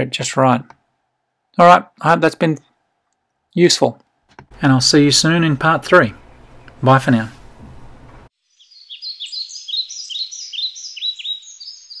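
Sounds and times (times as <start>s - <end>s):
birds chirping: 4.5s - 12.0s.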